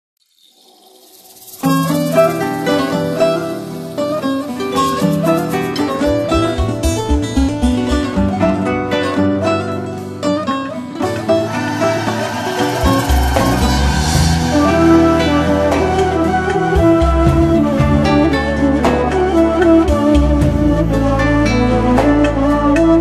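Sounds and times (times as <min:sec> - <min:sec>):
plucked string melody: 0:01.6 - 0:23.0.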